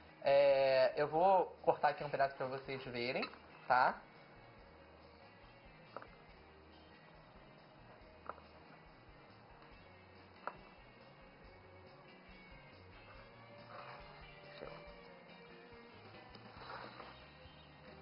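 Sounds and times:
faint background music: 0.0 - 18.0.

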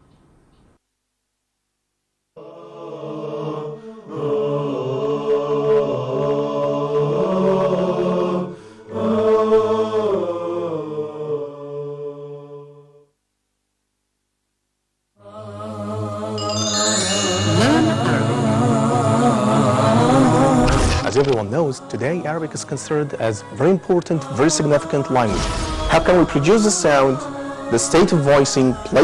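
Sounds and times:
layered voices chanting: 2.4 - 13.0, 15.2 - 29.0
music: 15.2 - 29.0.

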